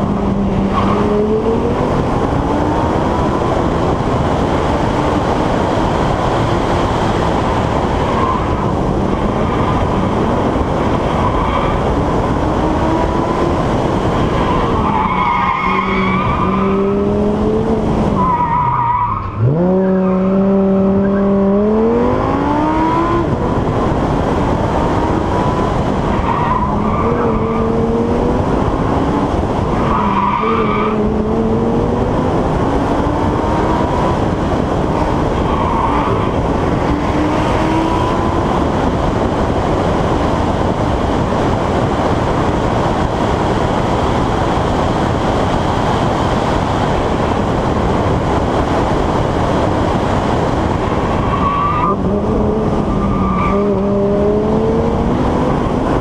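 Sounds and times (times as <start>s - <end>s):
wind noise on microphone: 0.0s - 14.9s, 15.8s - 18.3s, 19.2s - 56.0s
car engine accelerating: 0.0s - 56.0s
road rush: 0.0s - 56.0s.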